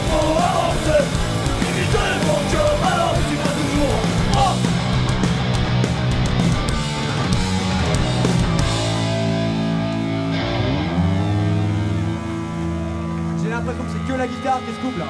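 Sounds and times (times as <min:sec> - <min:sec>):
punk band playing: 0:00.0 - 0:14.9
electric guitar ringing chord: 0:08.7 - 0:15.0.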